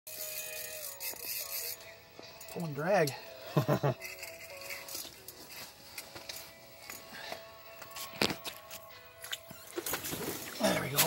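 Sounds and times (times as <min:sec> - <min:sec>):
fishing reel drag buzzing: 0:00.1 - 0:03.2, 0:04.0 - 0:05.0.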